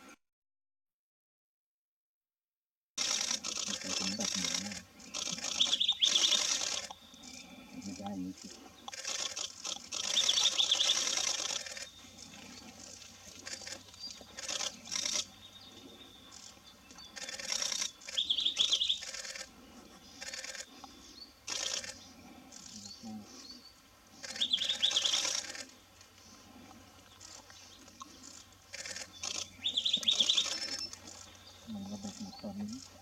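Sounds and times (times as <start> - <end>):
bird song with rapid trill: 3.8 - 8.0, 9.9 - 25.5, 29.0 - 32.8.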